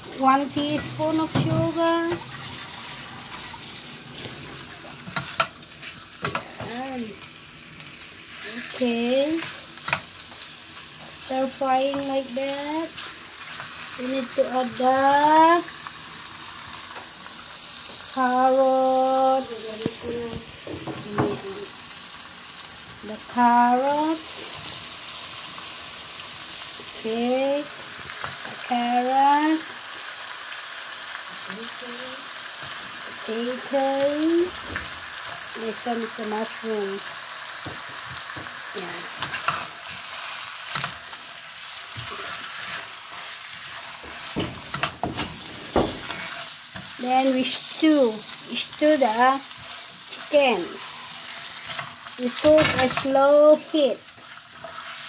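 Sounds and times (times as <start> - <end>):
chicken frying in oil: 0.0 - 55.0
spatula scraping and knocking pan: 0.2 - 2.7, 41.9 - 47.0, 49.0 - 55.0.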